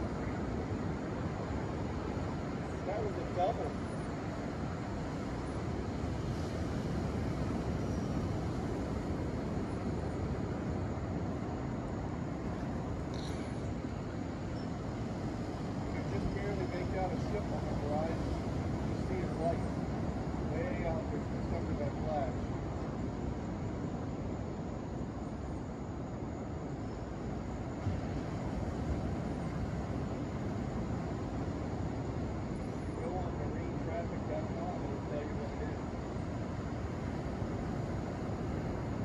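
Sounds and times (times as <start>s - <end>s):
ocean surf: 0.0s - 39.0s.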